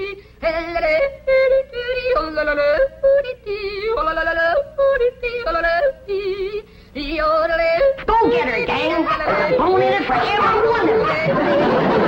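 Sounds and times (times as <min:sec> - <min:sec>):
overlapping voices and cries: 0:08.2 - 0:12.0.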